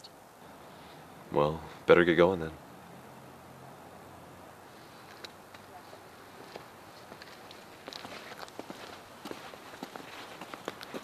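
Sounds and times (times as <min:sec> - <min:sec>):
faint hiss: 0:00.0 - 0:11.0
footsteps on concrete: 0:05.0 - 0:11.0.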